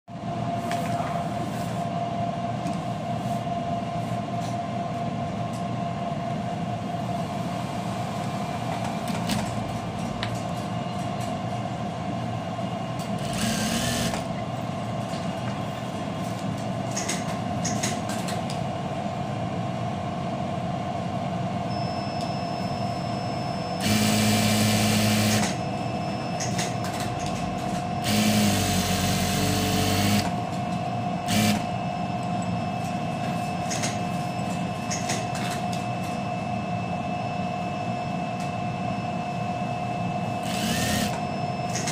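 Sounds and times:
sewing machine humming: 13.2 - 14.3, 23.8 - 25.6, 28.0 - 30.4, 31.3 - 31.7, 40.4 - 41.2.

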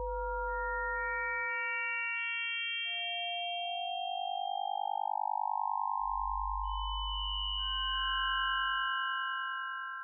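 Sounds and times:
synthesized sine tone chord: 0.0 - 1.5.

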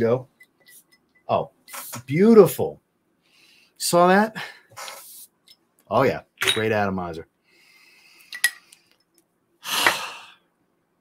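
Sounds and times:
person sniffing: 4.6 - 5.3, 9.6 - 10.4
glass bottle and cap clinking: 6.4 - 6.7, 8.3 - 8.6.

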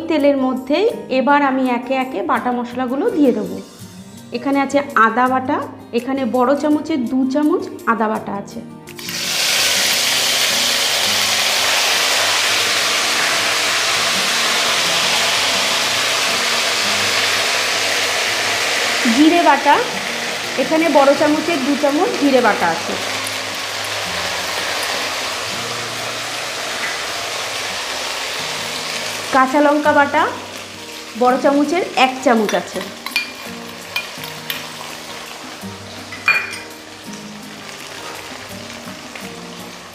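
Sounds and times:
paste sizzling in hot oil: 8.9 - 39.9.

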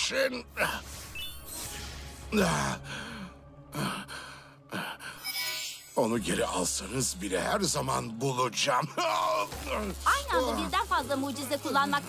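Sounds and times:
low background music: 0.0 - 5.2, 5.8 - 12.0.

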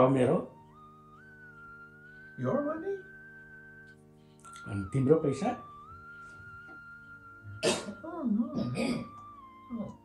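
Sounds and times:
soft sustained background music: 0.0 - 10.0
man coughing: 7.6 - 8.0, 8.7 - 9.1.

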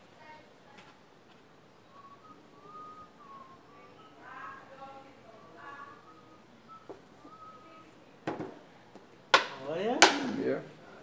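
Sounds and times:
faint whistling: 1.8 - 8.2.

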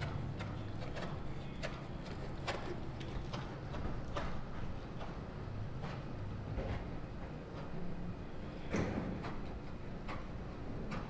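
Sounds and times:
horse hoofbeats on sand: 0.0 - 6.9.

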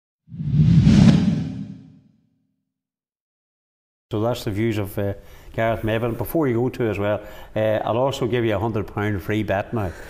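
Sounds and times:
whoosh with deep rumble: 0.3 - 2.0.

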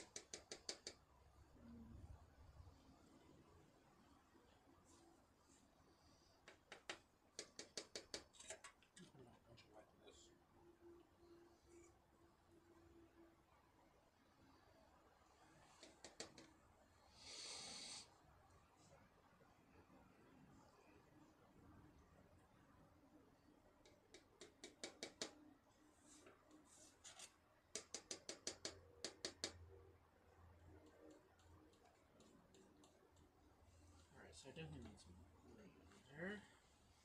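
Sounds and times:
faint low hum: 0.0 - 37.0
light clicks of paint mixing: 6.4 - 10.3, 30.6 - 34.2.

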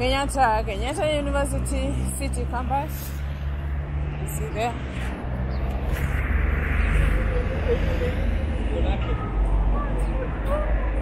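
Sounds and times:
steady low traffic rumble: 0.0 - 11.0
vehicle passing: 0.0 - 11.0.

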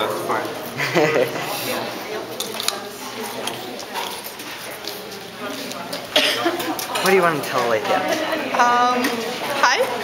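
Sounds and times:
people talking in a room: 0.0 - 10.0.

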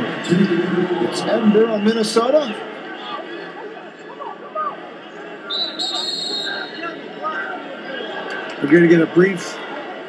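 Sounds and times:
arena crowd murmuring: 0.0 - 10.0
high referee's whistle: 5.5 - 6.9.

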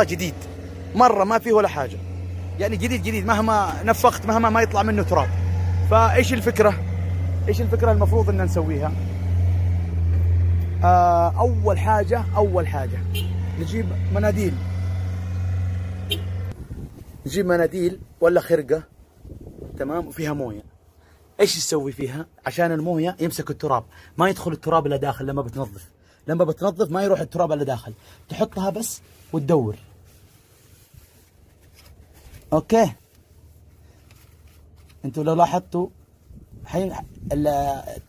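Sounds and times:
tissue rubbing inside housing: 0.3 - 8.0, 13.1 - 17.4, 28.2 - 37.4.

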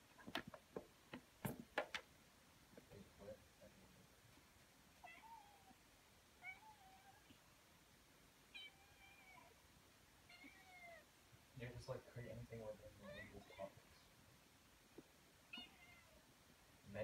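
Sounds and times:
kitten meowing: 5.0 - 5.8, 15.5 - 16.2
person speaking: 11.6 - 14.0.

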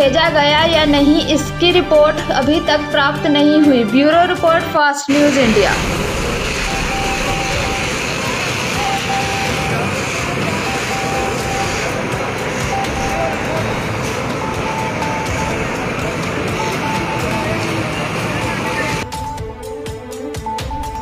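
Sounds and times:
voices: 0.0 - 19.0
high tone: 5.1 - 19.5
traffic: 5.2 - 19.0.

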